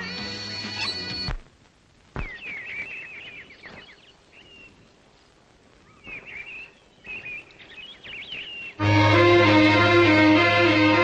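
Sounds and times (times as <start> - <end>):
small birds chirping: 0.0 - 1.4, 2.0 - 9.2
faint outdoor hiss: 0.0 - 11.0.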